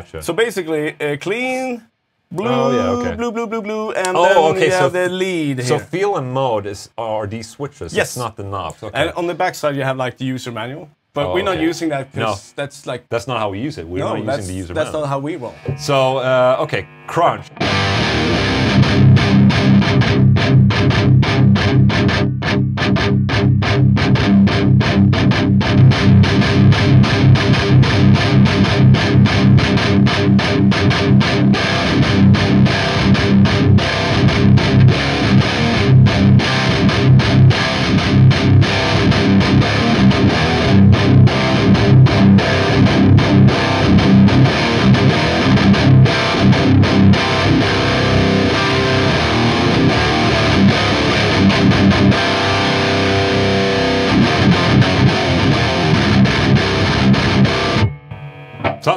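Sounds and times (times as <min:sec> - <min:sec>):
distorted electric guitar riffing: 0:02.3 - 0:05.9, 0:14.0 - 0:58.9.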